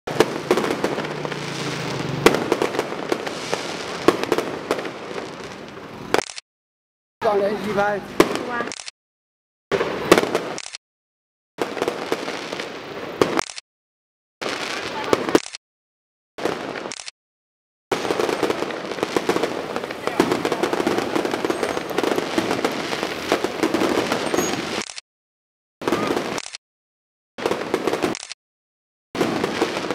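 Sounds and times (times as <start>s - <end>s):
fireworks bangs and crackles: 0.1s - 6.4s, 7.2s - 8.8s, 9.7s - 10.7s, 11.6s - 13.6s, 14.4s - 15.6s, 16.4s - 17.0s, 17.9s - 25.0s, 25.8s - 26.6s, 27.4s - 28.4s, 29.2s - 29.9s.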